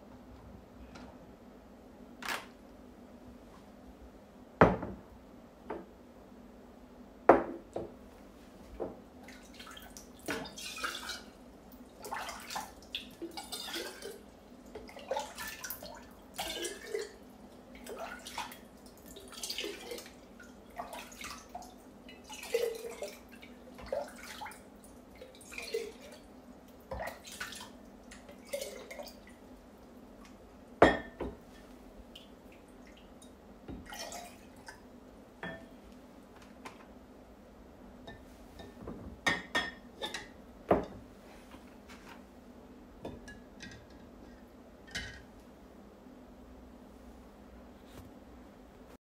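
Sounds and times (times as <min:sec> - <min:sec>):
glass clink: 0:30.8 - 0:31.2.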